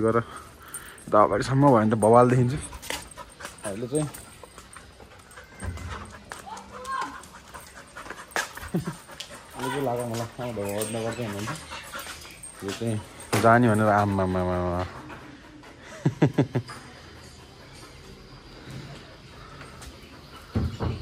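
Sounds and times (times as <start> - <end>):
dog panting: 0.1 - 21.0
man talking: 3.6 - 4.2.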